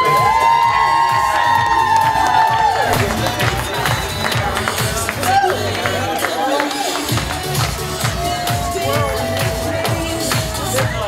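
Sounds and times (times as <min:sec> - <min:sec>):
crowd whooping and cheering: 0:00.0 - 0:11.0
dance music: 0:00.0 - 0:11.0.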